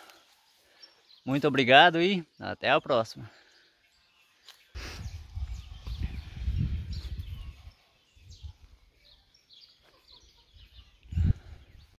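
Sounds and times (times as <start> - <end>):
low rumble on microphone: 4.8 - 7.7.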